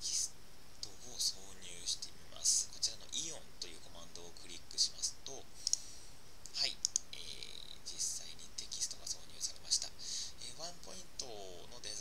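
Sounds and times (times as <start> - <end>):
person whispering: 0.0 - 5.9, 6.5 - 12.0
computer mouse clicks: 6.8 - 7.1.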